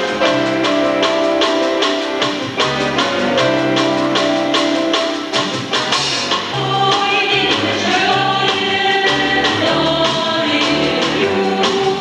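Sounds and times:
instrumental accompaniment with bass: 0.0 - 12.0
women's choir singing in harmony: 6.5 - 12.0.

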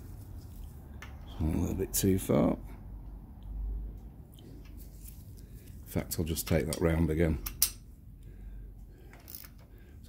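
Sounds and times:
low steady hum: 0.0 - 10.0
spanner handling sounds: 6.4 - 7.9, 9.0 - 10.0.

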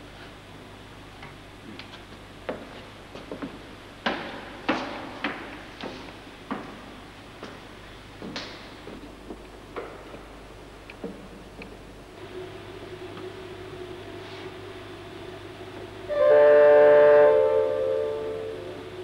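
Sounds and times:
footsteps on wooden stairs: 1.6 - 10.3.

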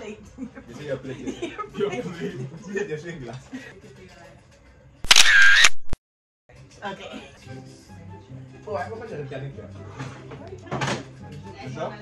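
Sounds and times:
camera shutter sound effect: 5.0 - 6.0.

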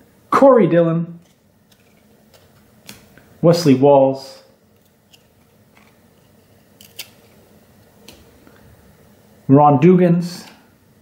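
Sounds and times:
trading cards flicked by hand: 1.2 - 3.2.

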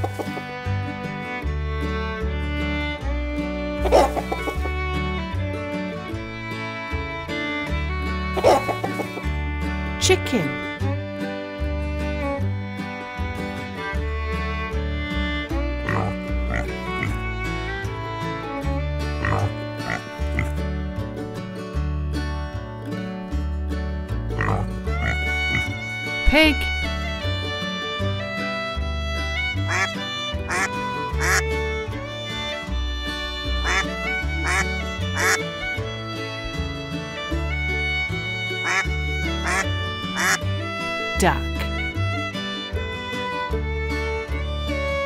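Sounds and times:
country music with guitar: 0.0 - 45.0
duck quacks: 3.8 - 4.6, 8.4 - 9.2, 15.8 - 17.1, 19.2 - 20.5, 24.4 - 25.7, 29.7 - 29.9, 30.5 - 31.4, 33.6 - 35.4, 38.6 - 40.4
cartoon pig oinks: 24.4 - 24.7.

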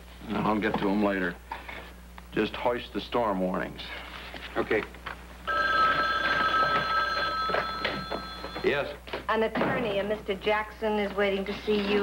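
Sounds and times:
desk telephone ringing: 5.5 - 9.0.

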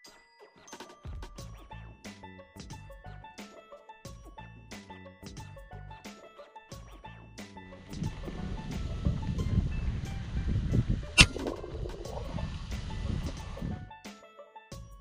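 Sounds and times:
wind rumbling on microphone: 7.8 - 13.9.

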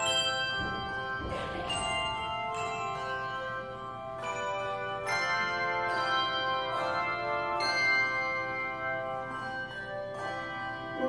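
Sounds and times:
handbell chords ringing: 0.0 - 11.0.

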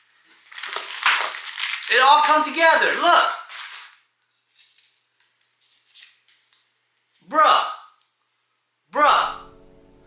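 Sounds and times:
packaging crinkling: 0.0 - 5.0.

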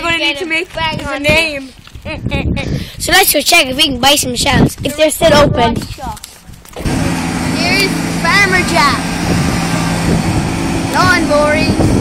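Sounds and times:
lawn mower engine humming: 6.7 - 12.0.

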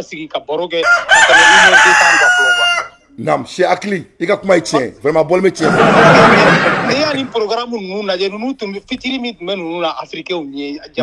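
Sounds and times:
rooster crowing: 0.8 - 3.0.

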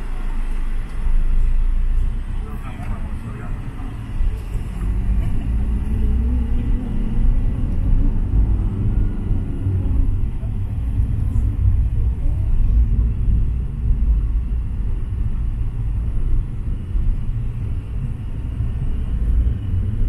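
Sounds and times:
van engine and road rumble: 0.0 - 20.0.

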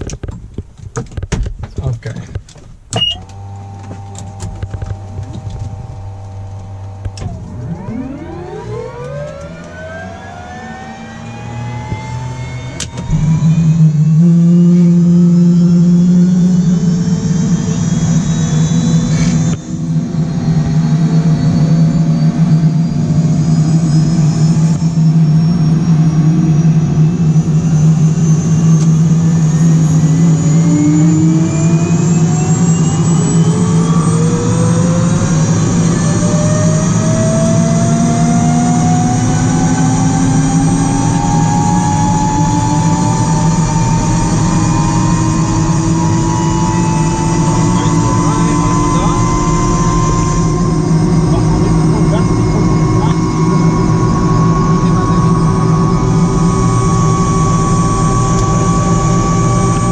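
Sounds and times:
helicopter engine rumble: 0.0 - 59.9
turbine starter whine: 2.6 - 59.9
ignition click: 2.9 - 7.7.

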